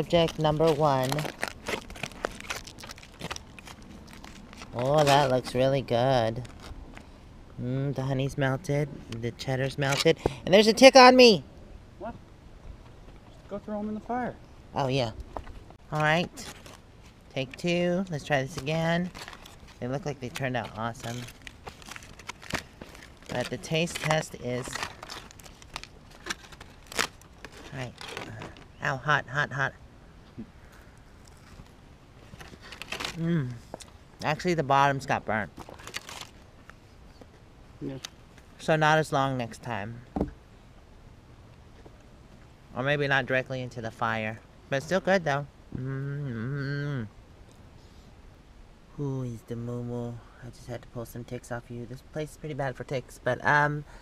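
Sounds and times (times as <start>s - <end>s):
aluminium foil crinkling: 0.0s - 5.6s, 6.2s - 7.0s, 15.9s - 28.8s, 30.6s - 36.8s
sharp foil crackles: 0.0s - 5.6s, 6.3s - 6.8s, 16.4s - 17.1s, 18.2s - 28.8s, 30.6s - 34.0s, 35.5s - 36.5s.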